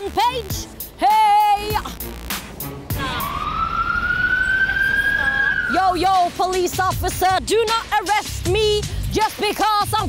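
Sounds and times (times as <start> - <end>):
police siren wailing: 2.9 - 6.0.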